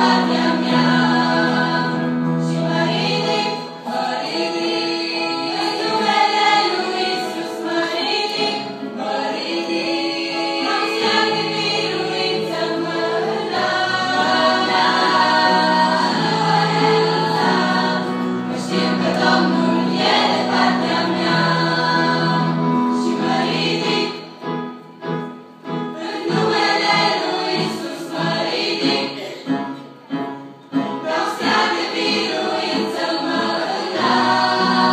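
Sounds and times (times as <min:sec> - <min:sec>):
girls' choir singing a hymn: 0:00.0 - 0:24.5, 0:25.7 - 0:29.8, 0:30.7 - 0:34.9.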